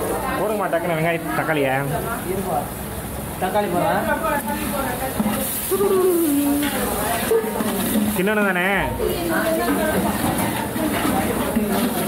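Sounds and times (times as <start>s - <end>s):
onions sizzling in a pot: 0.0s - 12.0s
people talking: 3.4s - 12.0s.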